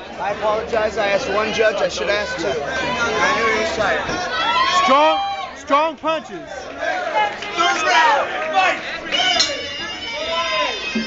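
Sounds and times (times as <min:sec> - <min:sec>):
crowd murmur: 0:00.0 - 0:11.0
men shouting: 0:06.2 - 0:10.9.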